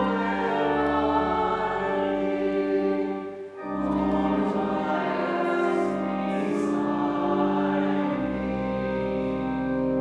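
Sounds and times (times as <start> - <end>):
held organ chord: 0.0 - 10.0
voices singing a hymn: 0.0 - 10.0.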